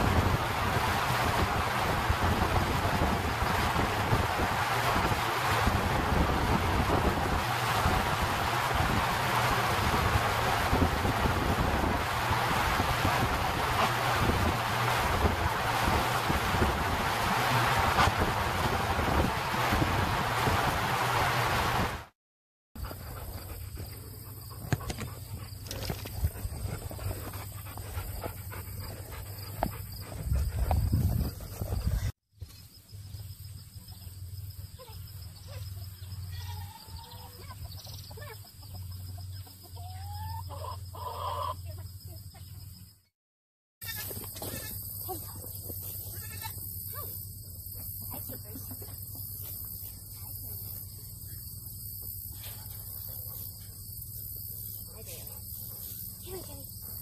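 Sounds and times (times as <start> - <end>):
high insect hum: 22.8 - 43.1, 43.8 - 57.0
hens clucking: 37.0 - 41.6.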